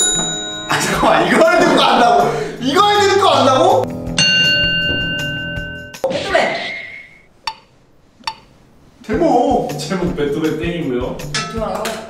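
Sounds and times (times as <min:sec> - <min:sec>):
bell ding: 0:00.0 - 0:01.4, 0:03.9 - 0:06.0
background music: 0:00.0 - 0:07.2, 0:09.1 - 0:12.0.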